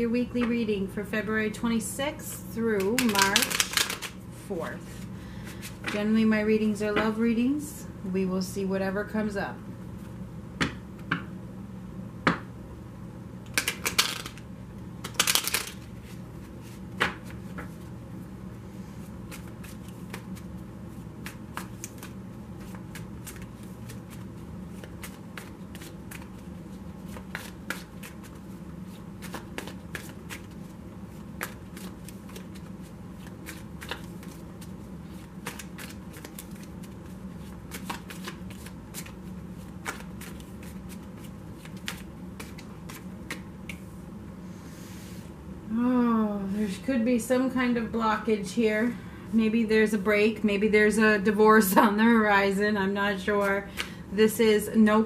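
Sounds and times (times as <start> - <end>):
cards being shuffled: 2.8 - 4.2, 13.5 - 14.4, 15.0 - 17.8, 19.3 - 43.9.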